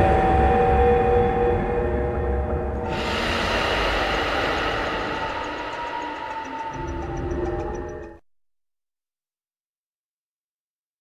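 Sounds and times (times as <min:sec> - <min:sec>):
low rumble: 0:02.6 - 0:08.2
rushing whoosh: 0:02.8 - 0:08.2.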